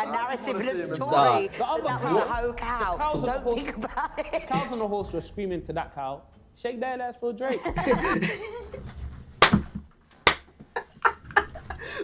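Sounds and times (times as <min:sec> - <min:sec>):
people laughing: 0:01.2 - 0:05.0, 0:07.5 - 0:08.9, 0:10.7 - 0:12.0
sharp hand claps: 0:09.4 - 0:10.5.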